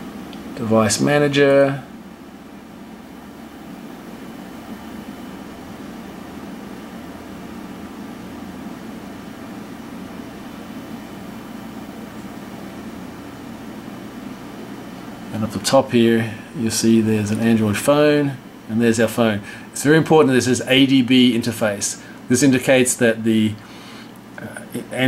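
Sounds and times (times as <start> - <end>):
fan humming: 0.0 - 25.0.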